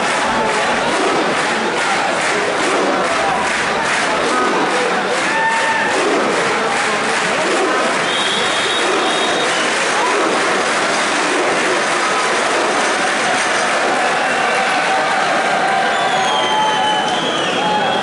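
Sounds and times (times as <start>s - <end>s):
crowd shouting and cheering: 0.0s - 18.0s.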